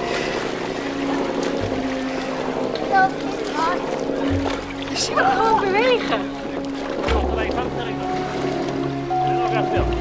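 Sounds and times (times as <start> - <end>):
background voices of swimmers: 0.0 - 10.0.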